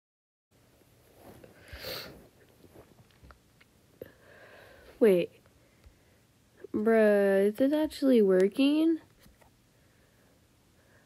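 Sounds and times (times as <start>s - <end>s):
breathy hiss at microphone: 1.4s - 2.4s.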